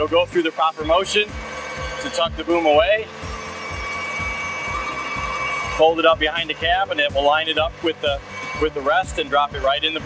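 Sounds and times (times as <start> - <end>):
hydraulic crane whine: 0.0 - 10.0
low pulsing hydraulic throb: 0.0 - 10.0.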